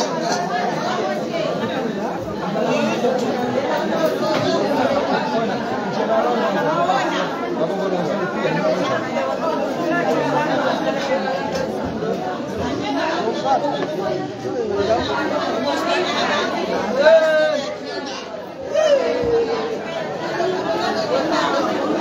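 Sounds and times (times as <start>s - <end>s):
women chattering: 0.0s - 22.0s.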